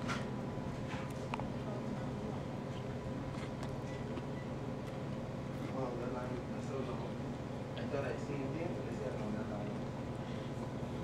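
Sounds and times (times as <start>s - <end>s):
low room hum: 0.0s - 11.0s
man chewing crisp pastry: 2.7s - 5.7s.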